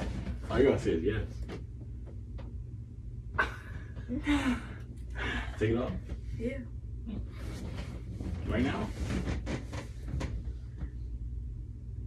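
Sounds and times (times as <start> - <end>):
low steady hum: 0.0 - 12.0
soft knocks and rustles: 7.3 - 11.1.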